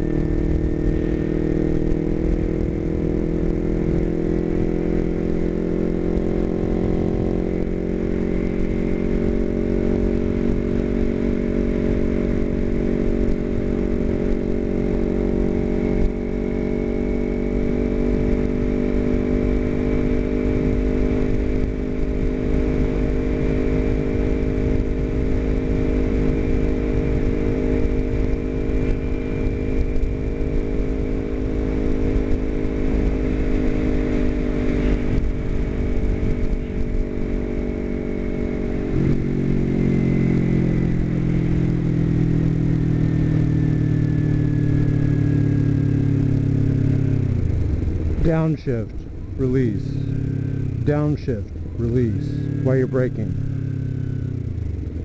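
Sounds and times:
motorcycle engine cruising: 0:00.0 - 0:55.0.

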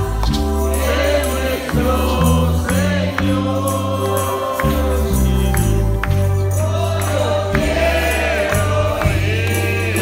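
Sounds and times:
congregation singing: 0:00.0 - 0:10.0
low bass notes: 0:00.0 - 0:10.0.

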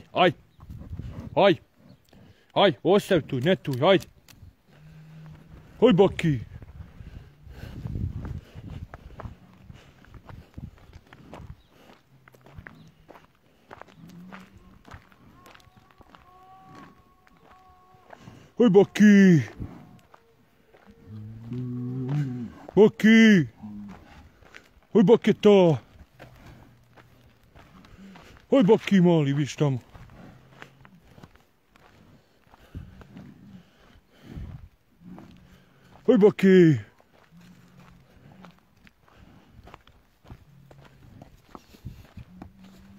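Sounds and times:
footsteps on stony dirt: 0:00.0 - 0:42.9.

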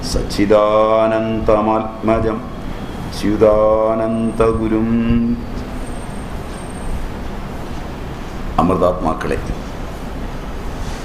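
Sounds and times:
man chanting: 0:00.0 - 0:05.5
steady hiss with low hum: 0:00.0 - 0:11.0.

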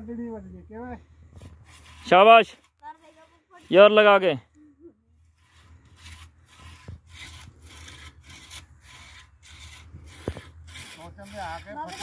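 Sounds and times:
hand saw cutting wood: 0:01.4 - 0:04.3, 0:05.3 - 0:12.0.

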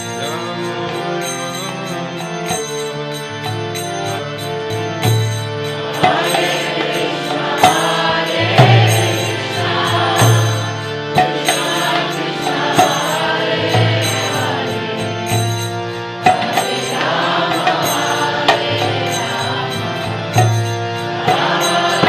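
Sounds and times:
harmonium chords: 0:00.0 - 0:22.0
sharp percussion strikes: 0:00.0 - 0:22.0.

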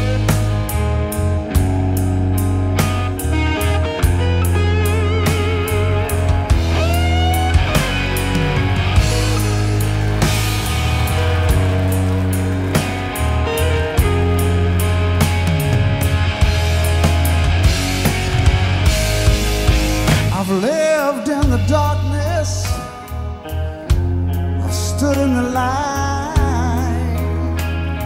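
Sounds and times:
bass guitar: 0:00.0 - 0:28.0
drum kit: 0:00.0 - 0:28.0
lead electric guitar: 0:00.0 - 0:28.0.

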